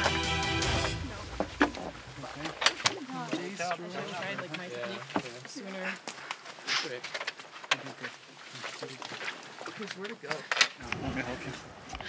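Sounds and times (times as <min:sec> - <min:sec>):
man and woman talking: 0:00.9 - 0:07.1.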